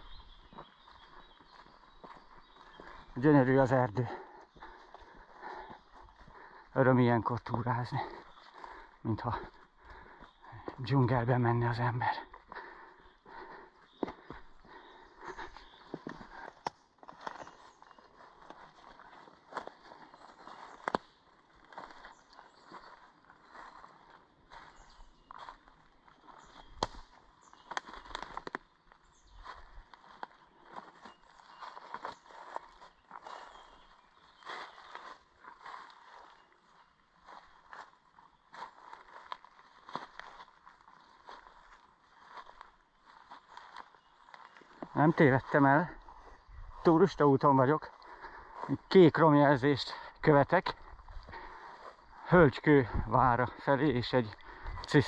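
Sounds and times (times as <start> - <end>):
footsteps crunching leaf litter: 0.0 - 4.8, 13.9 - 55.0
plants rustling: 29.3 - 49.6.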